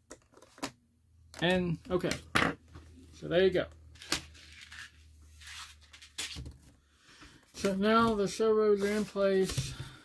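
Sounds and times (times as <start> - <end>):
soft handling rustle: 7.2 - 10.0.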